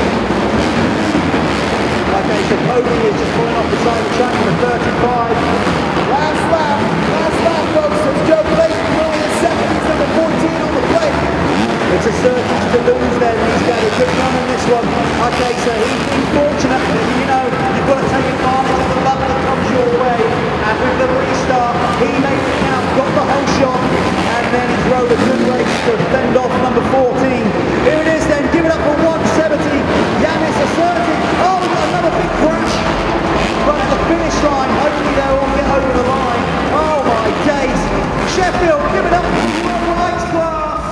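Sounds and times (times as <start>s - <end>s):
motocross bike engines revving: 0.0s - 40.9s
steady background din: 0.0s - 40.9s.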